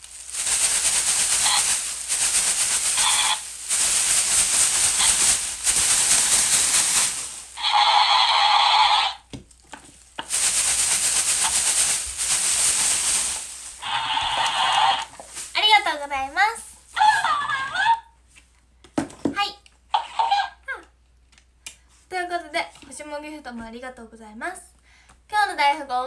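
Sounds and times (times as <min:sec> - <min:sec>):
foil pom-poms rustling: 0:00.0 - 0:18.4.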